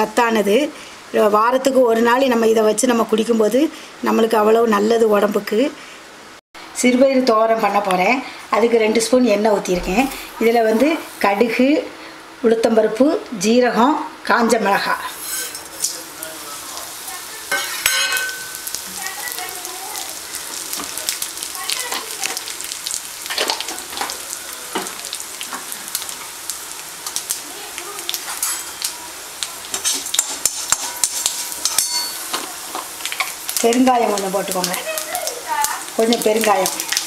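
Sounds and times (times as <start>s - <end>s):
spices sizzling in hot oil: 7.5s - 12.1s, 14.6s - 37.0s.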